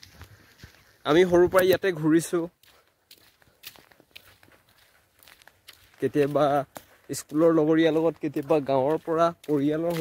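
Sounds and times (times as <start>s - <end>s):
footsteps crunching on dirt road: 0.0s - 10.0s
man speaking: 1.0s - 2.6s, 5.9s - 10.0s.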